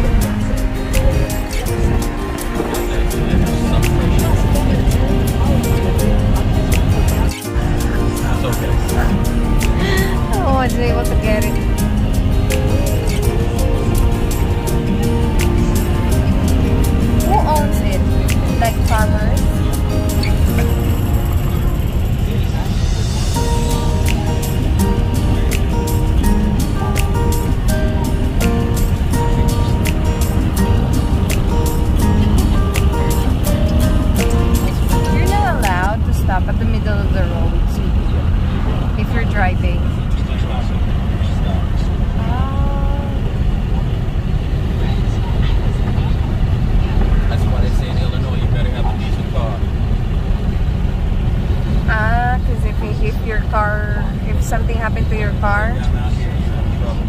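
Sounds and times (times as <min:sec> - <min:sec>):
voice: 0:00.0 - 0:11.8, 0:17.2 - 0:20.3, 0:21.4 - 0:23.4, 0:34.9 - 0:38.3, 0:39.0 - 0:43.4, 0:44.7 - 0:49.7, 0:51.9 - 0:57.0
music with regular beat: 0:00.0 - 0:36.0
car road and engine noise: 0:00.0 - 0:57.0.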